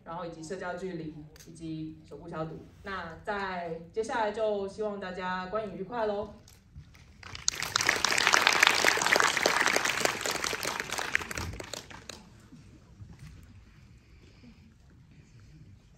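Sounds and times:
audience clapping: 7.2 - 12.5.

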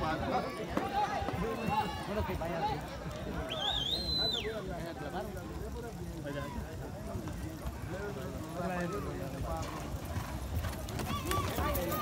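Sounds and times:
horse hoofbeats on dirt: 6.6 - 12.0
people talking: 10.9 - 12.0.

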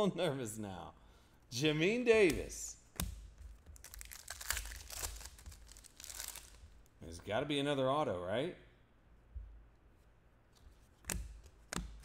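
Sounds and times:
foil wrapper crinkling and tearing: 3.8 - 6.9.

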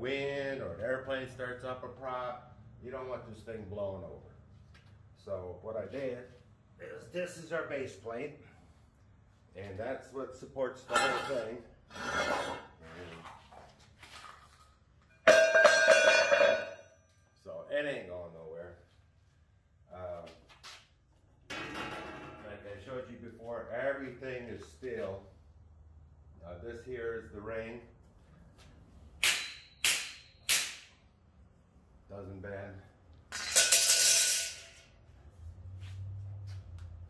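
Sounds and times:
steel plate clanging on floor: 10.9 - 12.7, 15.1 - 16.9, 21.5 - 22.5, 33.3 - 34.9
steel ring struck: 15.2 - 17.0.

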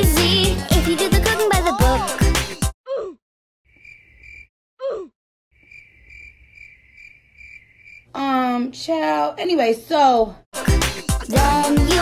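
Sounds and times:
crickets chirping: 3.7 - 4.5, 5.6 - 8.1.

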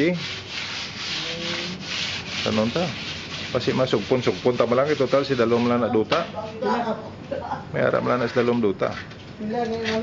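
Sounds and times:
rough rubbing on hard surface: 0.0 - 6.0.

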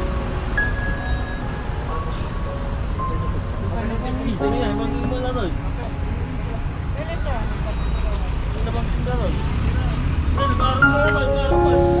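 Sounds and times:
people chattering: 1.7 - 12.0.

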